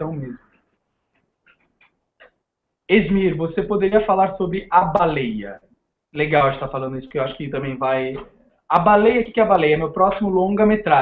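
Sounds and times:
person speaking: 0:00.0 - 0:00.4, 0:02.9 - 0:05.6, 0:06.2 - 0:11.0.

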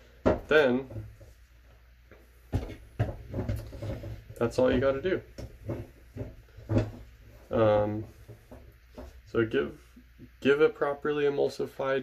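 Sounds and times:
plastic knocks and scrapes: 0:00.0 - 0:01.5, 0:02.1 - 0:10.4
sharp plastic knocks: 0:02.5 - 0:07.2.

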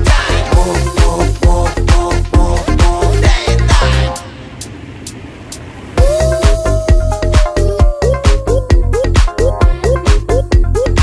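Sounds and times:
dance music: 0:00.0 - 0:04.3, 0:06.0 - 0:11.0
van engine and road noise: 0:00.0 - 0:11.0.

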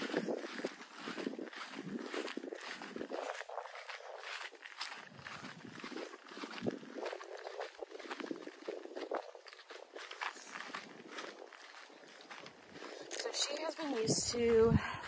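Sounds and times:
footsteps on grass: 0:00.0 - 0:15.0.

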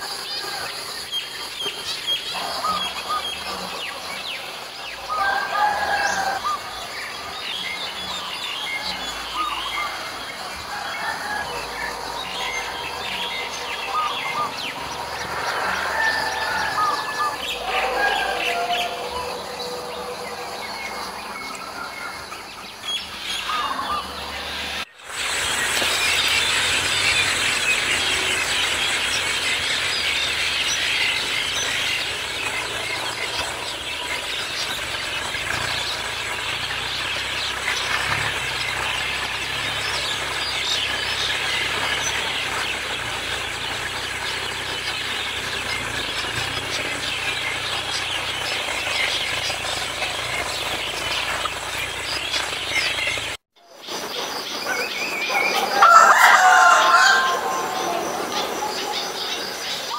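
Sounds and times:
flock of birds chattering: 0:00.0 - 0:59.9
loud bird call: 0:00.0 - 0:59.9.

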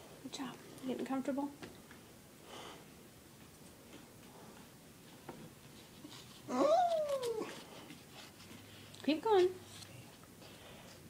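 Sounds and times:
person vocalizing uh: 0:06.5 - 0:07.6.

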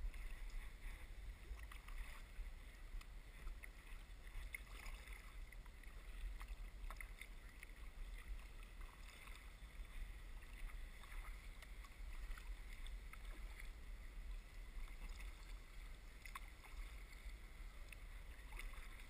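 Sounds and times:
steady low rumble: 0:00.0 - 0:19.0
water drips and ticks: 0:00.0 - 0:19.0.

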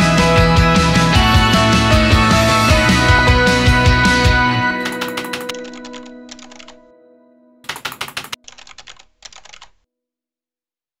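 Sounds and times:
background music: 0:00.0 - 0:09.7
computer keyboard typing: 0:04.8 - 0:06.8, 0:07.7 - 0:09.8.

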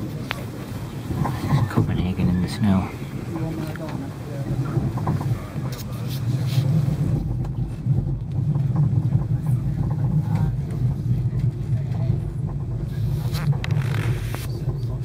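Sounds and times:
train rumbling inside carriage: 0:00.0 - 0:15.0.

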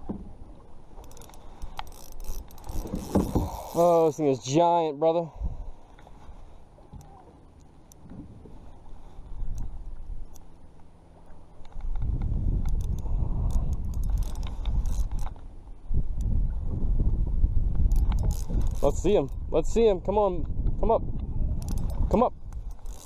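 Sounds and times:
reel clicks: 0:00.9 - 0:04.5, 0:05.9 - 0:16.4, 0:17.7 - 0:23.0
fishing reel being cranked: 0:01.0 - 0:04.2, 0:11.8 - 0:15.5, 0:17.8 - 0:19.4, 0:21.5 - 0:23.0.

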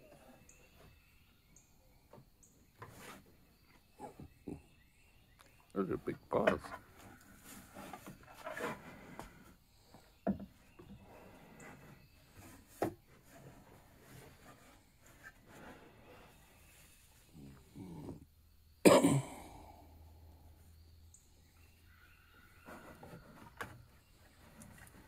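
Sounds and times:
claws scraping on wooden deck: 0:02.4 - 0:04.1, 0:06.4 - 0:18.2, 0:21.9 - 0:25.0.

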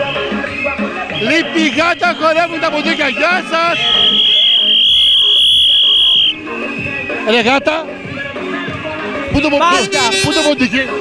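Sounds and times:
shrill toy whistle: 0:03.8 - 0:06.4.

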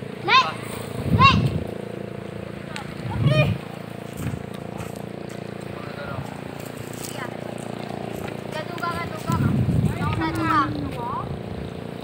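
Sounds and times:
motor running steadily: 0:00.0 - 0:12.0.

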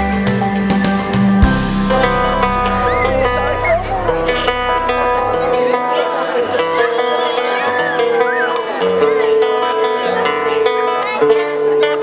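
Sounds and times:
deep bass: 0:01.1 - 0:06.0
acoustic guitar picking: 0:01.4 - 0:12.0.

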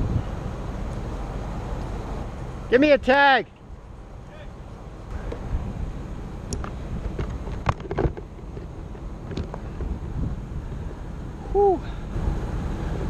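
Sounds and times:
wind buffeting microphone: 0:00.0 - 0:03.1, 0:05.1 - 0:13.0.

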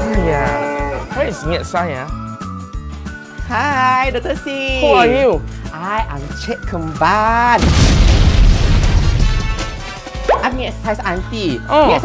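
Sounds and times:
background music with steady beat: 0:00.0 - 0:07.7, 0:08.6 - 0:12.0.

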